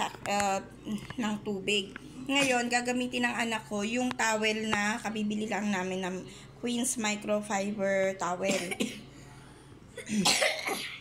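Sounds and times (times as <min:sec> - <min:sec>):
person coughing: 0:08.5 - 0:09.0, 0:10.0 - 0:11.0.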